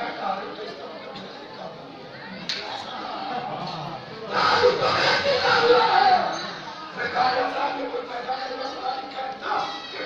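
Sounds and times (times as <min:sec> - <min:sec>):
man chanting through microphone: 0:04.2 - 0:10.0.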